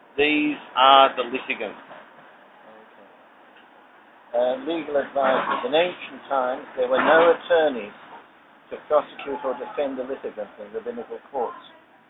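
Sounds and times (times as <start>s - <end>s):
recording hiss: 0.0s - 12.0s
person talking: 8.7s - 11.7s.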